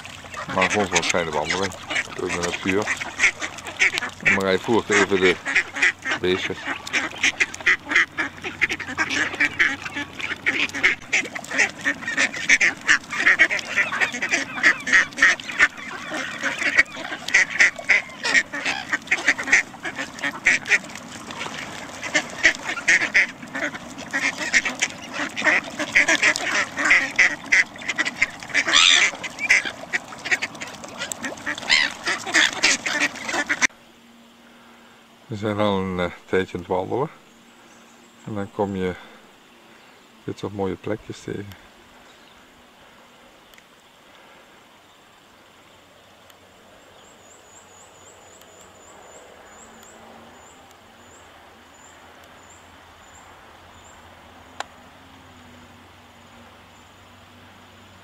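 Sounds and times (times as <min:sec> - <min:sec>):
ducks quacking: 0:00.0 - 0:33.7.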